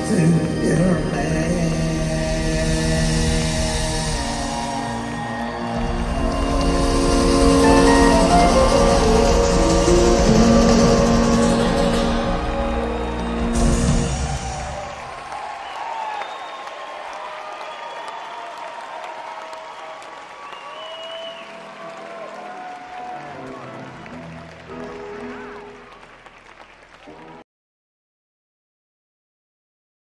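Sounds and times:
audience applauding and cheering: 0.0 - 27.4.

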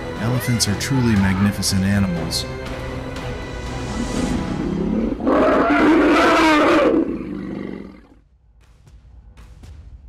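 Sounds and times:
wild animal cry: 4.6 - 8.2.

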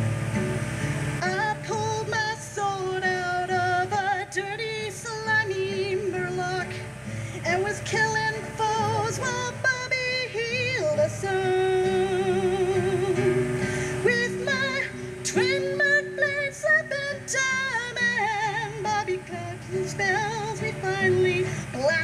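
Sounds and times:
strummed acoustic guitar: 0.0 - 22.0
woman singing folk song: 0.0 - 22.0.

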